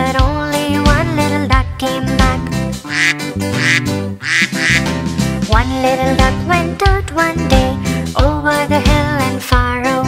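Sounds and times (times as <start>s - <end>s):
cheerful children's instrumental music: 0.0s - 10.0s
cartoon duck quacks: 2.9s - 4.9s.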